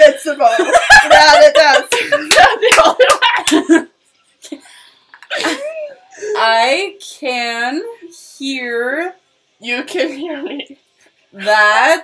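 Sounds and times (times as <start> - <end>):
women laughing: 0.4 - 3.9, 5.2 - 6.4.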